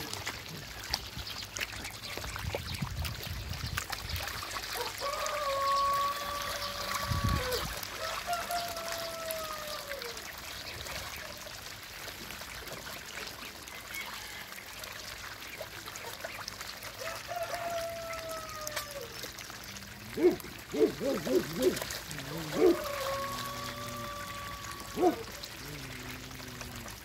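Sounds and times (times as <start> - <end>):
water splashing and trickling: 0.0 - 27.0
long drawn-out calls: 20.1 - 27.0.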